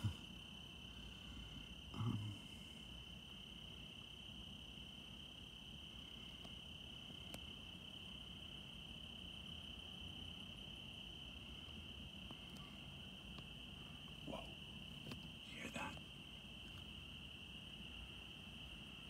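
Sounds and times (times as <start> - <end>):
crickets calling: 0.0 - 19.0.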